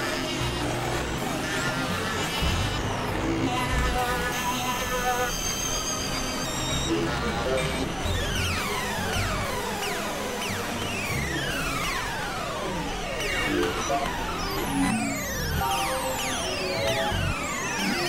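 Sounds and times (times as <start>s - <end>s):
experimental synthesizer music: 6.4s - 18.0s.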